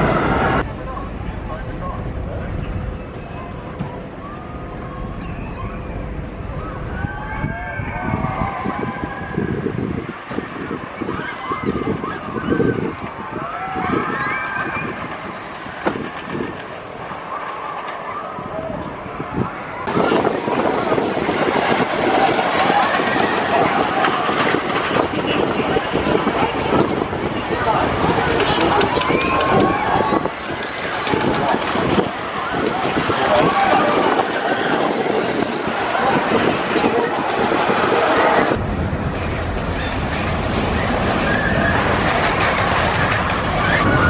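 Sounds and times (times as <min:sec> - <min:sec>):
people's voices: 0:00.0 - 0:38.7, 0:39.5 - 0:44.0
roller coaster rumbling on track: 0:00.0 - 0:44.0.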